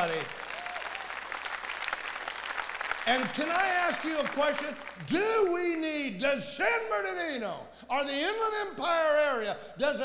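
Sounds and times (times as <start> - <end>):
congregation clapping: 0.0 - 5.2.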